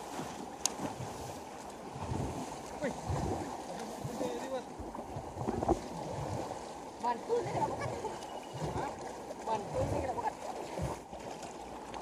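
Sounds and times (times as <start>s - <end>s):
water splashing and churning: 0.0s - 12.0s.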